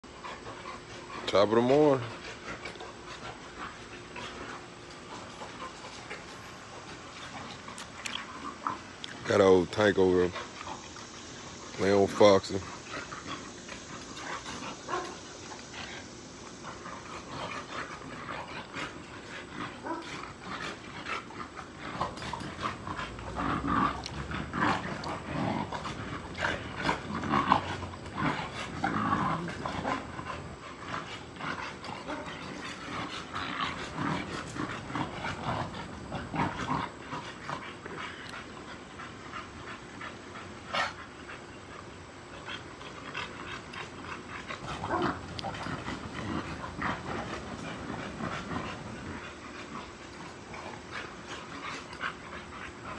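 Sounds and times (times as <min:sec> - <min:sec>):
dogs growling while play-fighting: 0:00.0 - 0:52.9.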